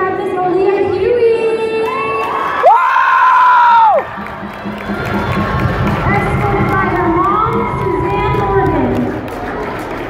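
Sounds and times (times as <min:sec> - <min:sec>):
crowd cheering and shouting: 0:01.5 - 0:10.0.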